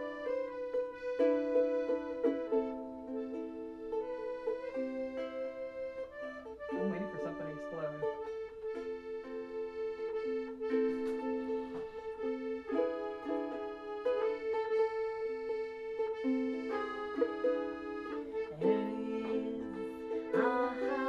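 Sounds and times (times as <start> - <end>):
accordion chords: 0.0 - 21.0
ukulele strumming: 0.0 - 21.0.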